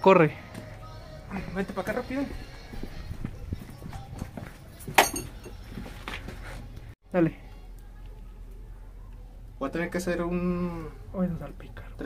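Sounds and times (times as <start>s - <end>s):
hurried footsteps on concrete: 1.4s - 7.0s.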